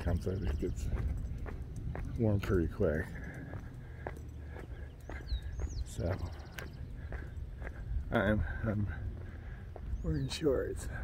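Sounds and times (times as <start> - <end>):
footsteps on asphalt: 0.0 - 11.0
wind rumble on microphone: 0.0 - 11.0.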